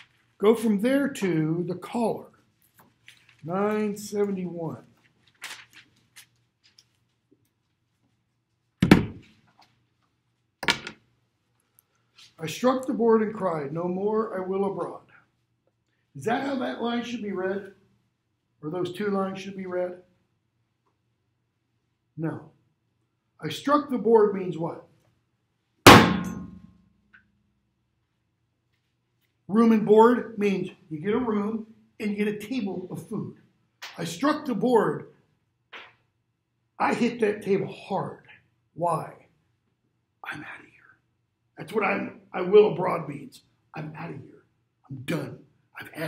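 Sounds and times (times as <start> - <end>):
paper rustling: 0.0 - 0.5, 2.4 - 10.2
book thumping: 8.8 - 9.3
hand slamming on table: 8.8 - 9.3.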